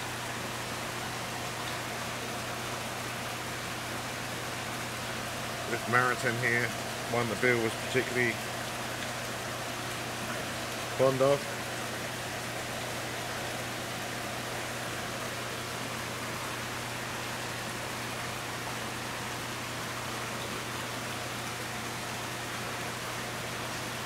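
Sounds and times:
constant low hum: 0:00.0 - 0:24.0
steady hissing noise: 0:00.0 - 0:24.0.

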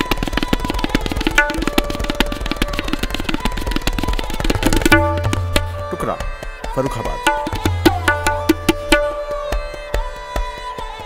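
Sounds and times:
fast tabla playing: 0:00.0 - 0:11.0
sarangi holding long notes: 0:00.0 - 0:11.0.

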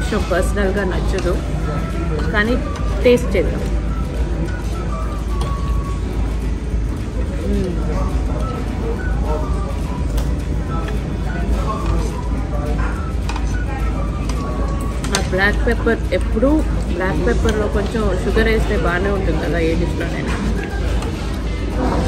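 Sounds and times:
faint music: 0:00.0 - 0:22.0
murmured voices: 0:01.1 - 0:22.0.

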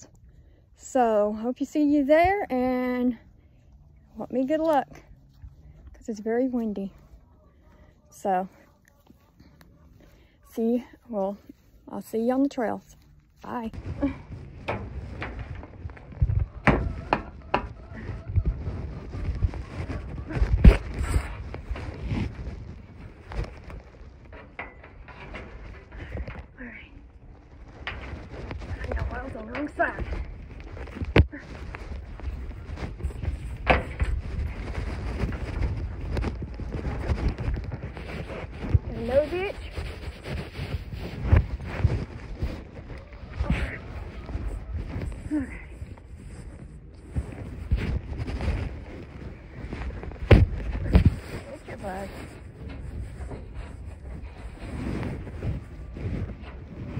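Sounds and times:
wind buffeting microphone: 0:13.6 - 0:56.9.

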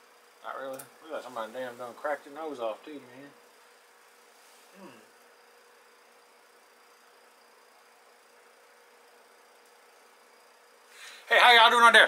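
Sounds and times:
thin steady hum: 0:00.0 - 0:12.0.

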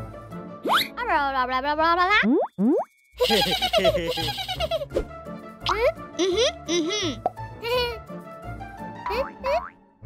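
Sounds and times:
bouncy children's music: 0:03.2 - 0:05.0, 0:05.6 - 0:09.8.

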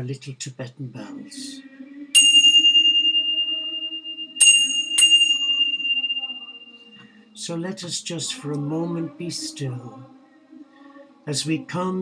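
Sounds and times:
small bells ringing: 0:02.2 - 0:07.2.

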